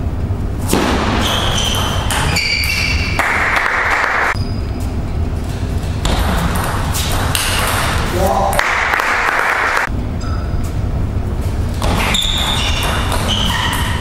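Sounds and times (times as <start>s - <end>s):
ball bouncing on table: 6.0s - 8.7s, 11.8s - 14.0s.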